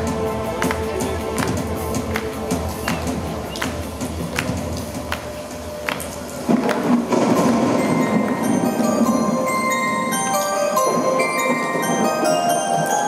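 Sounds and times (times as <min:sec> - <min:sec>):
synthesizer pad: 0:00.0 - 0:13.0
high bell-like notes: 0:07.6 - 0:13.0.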